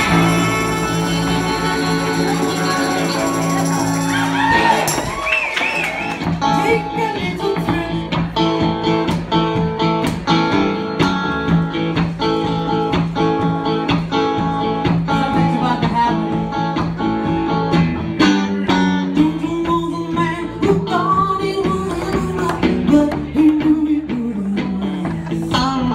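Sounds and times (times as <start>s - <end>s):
strummed guitar rhythm: 0.0s - 5.2s, 6.1s - 25.9s
electric guitars playing: 0.0s - 25.9s.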